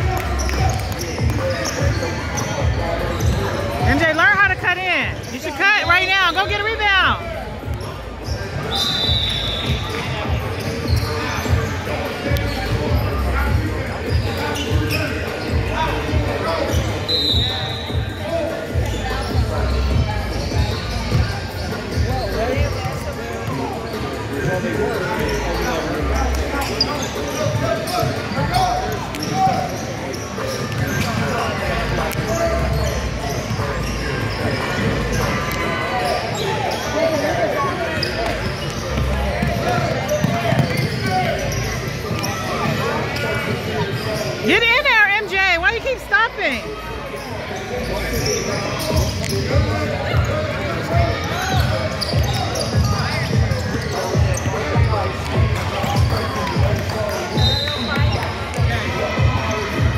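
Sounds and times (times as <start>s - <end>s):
voices in echoing hall: 0.0s - 59.9s.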